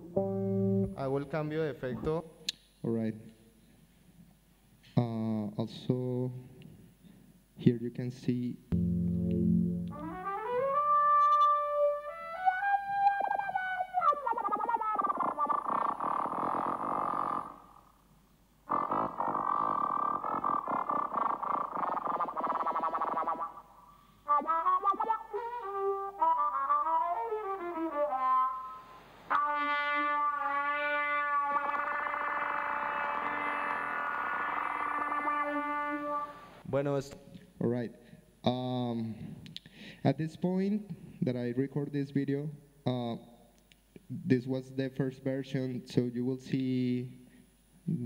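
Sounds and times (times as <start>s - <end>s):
trumpet through effects processor: 8.7s - 15.9s, 24.3s - 36.6s.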